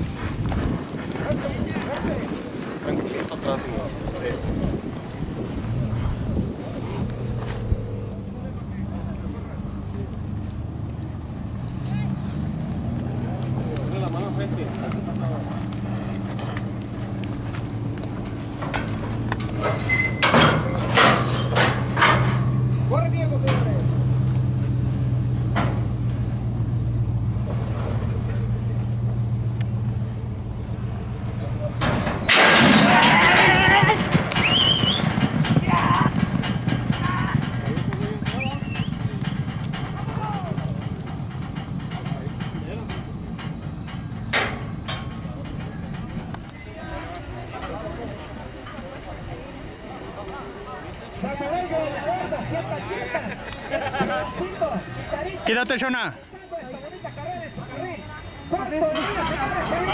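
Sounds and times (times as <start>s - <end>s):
vehicle engine idling: 3.7s - 32.3s, 33.4s - 59.9s
starting gate banging open: 18.2s - 24.2s, 31.4s - 46.8s, 56.9s - 59.9s
crowd shouting: 32.4s - 39.2s, 39.9s - 41.0s, 49.1s - 59.9s.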